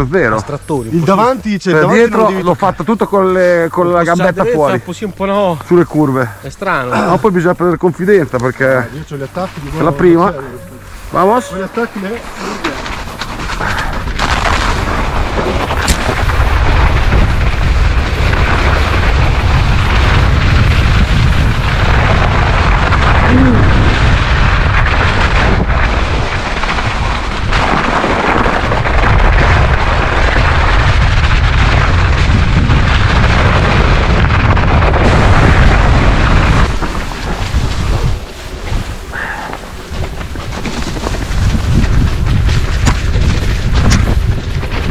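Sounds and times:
tyres rolling on snow: 0:00.0 - 0:44.9
wind buffeting microphone: 0:09.4 - 0:44.9.

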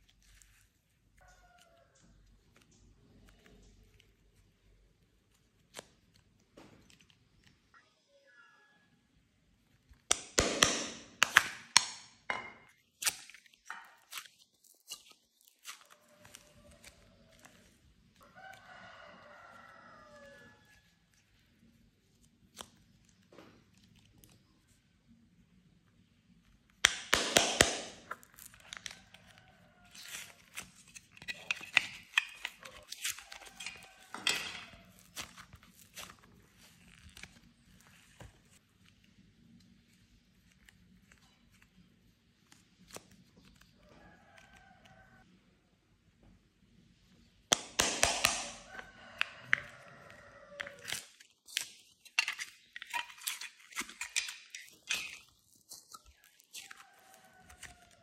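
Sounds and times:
plastic crackling and crinkling: 0:00.0 - 0:07.7, 0:12.7 - 0:25.3, 0:27.8 - 0:45.2, 0:47.8 - 0:58.0
crackling plastic rustle: 0:50.4 - 0:58.0.

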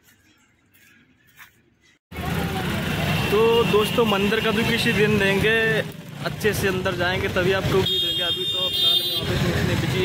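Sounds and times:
road traffic engines: 0:00.3 - 0:10.0.

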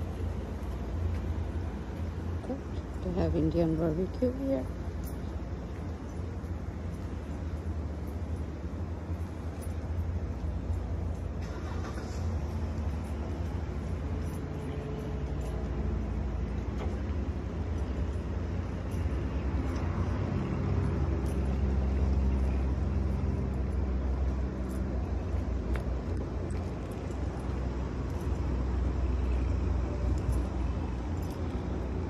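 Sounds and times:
low outdoor rumble: 0:00.0 - 0:32.0.

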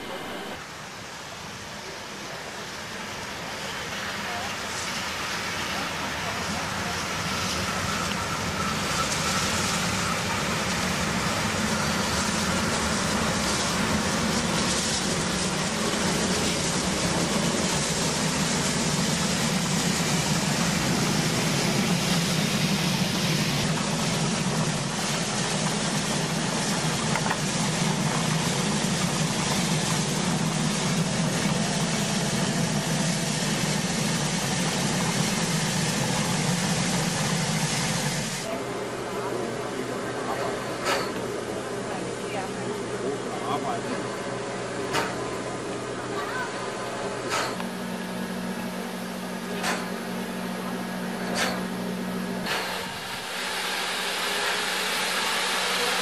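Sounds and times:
steam locomotive rumbling past: 0:00.0 - 0:56.0.

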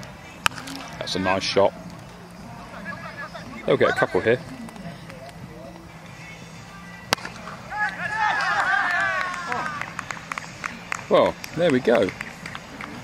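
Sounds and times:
players shouting together: 0:07.5 - 0:09.9.

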